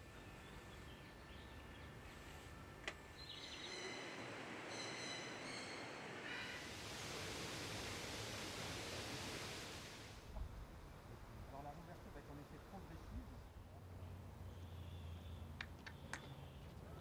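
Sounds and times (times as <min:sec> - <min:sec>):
steady rustling hiss: 0:00.0 - 0:13.6
high whistling calls: 0:03.2 - 0:08.2.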